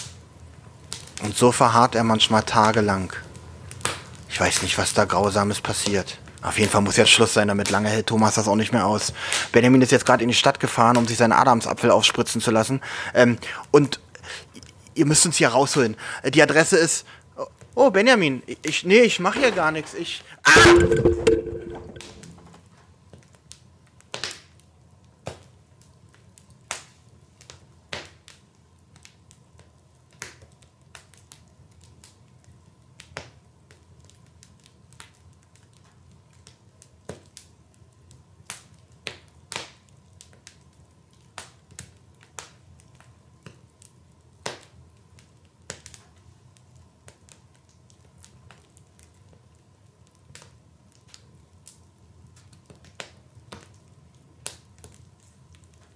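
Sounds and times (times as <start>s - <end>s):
sharp crackles and clicks: 20.5s - 22.5s.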